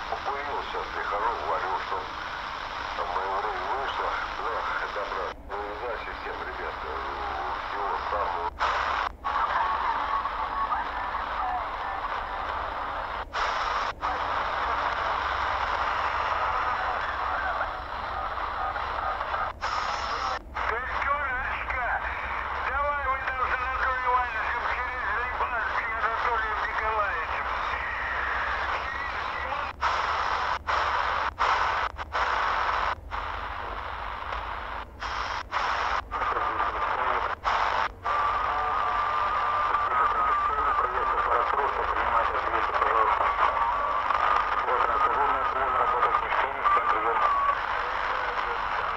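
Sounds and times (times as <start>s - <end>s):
garbled radio voices: 0.0s - 48.9s
radio static: 0.0s - 48.9s.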